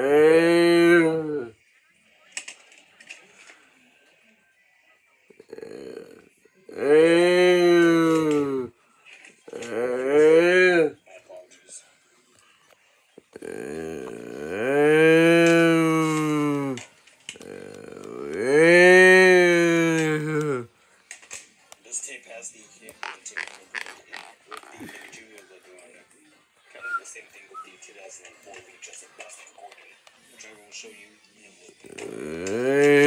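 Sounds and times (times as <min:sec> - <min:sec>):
person making moo-like calls: 0:00.0 - 0:01.5, 0:05.4 - 0:08.7, 0:09.5 - 0:11.0, 0:13.3 - 0:16.8, 0:17.4 - 0:20.7, 0:32.0 - 0:33.0
tv sound: 0:00.0 - 0:33.0.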